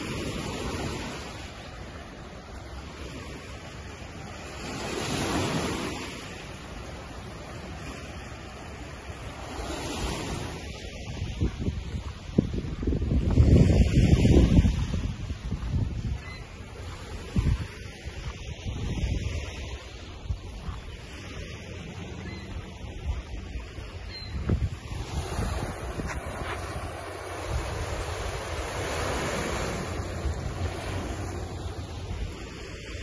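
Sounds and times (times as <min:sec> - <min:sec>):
waves washing on rocky shore: 0:00.0 - 0:16.2, 0:23.0 - 0:33.0
wind buffeting the microphone: 0:09.3 - 0:33.0.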